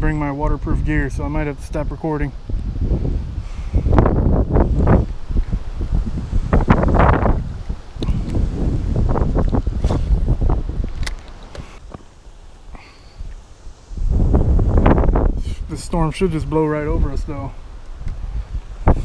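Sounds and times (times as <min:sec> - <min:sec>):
storm wind buffeting microphone: 0:00.0 - 0:12.0, 0:13.1 - 0:19.0.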